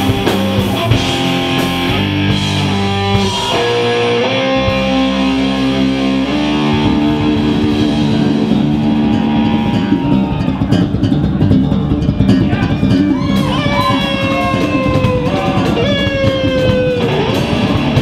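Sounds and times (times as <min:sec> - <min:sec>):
bass guitar: 0:00.0 - 0:18.0
drum kit: 0:00.0 - 0:18.0
electric guitar sustained notes: 0:00.0 - 0:18.0
djembe drumming: 0:06.8 - 0:18.0.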